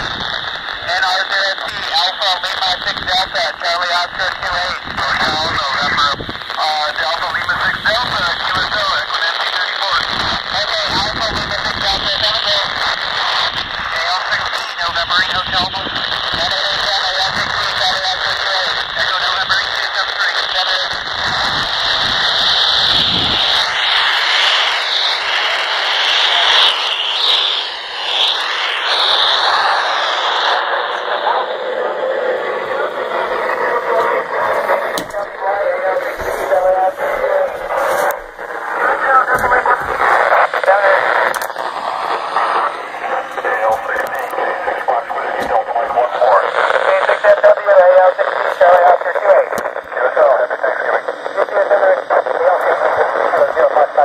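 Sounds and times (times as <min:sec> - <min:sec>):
choppy radio voice: 0:00.0 - 0:25.4, 0:26.0 - 0:54.0
radio static hiss: 0:00.0 - 0:54.0
radio clicks: 0:00.7 - 0:03.4, 0:33.1 - 0:53.8.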